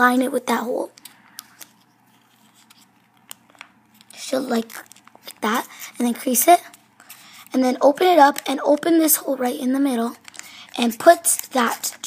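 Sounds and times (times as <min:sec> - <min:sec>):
paper rustling: 0:01.4 - 0:05.5, 0:10.0 - 0:12.0.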